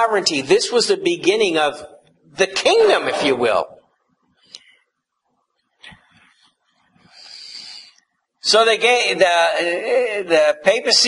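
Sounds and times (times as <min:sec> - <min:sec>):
man drawing breath: 0:07.0 - 0:08.0.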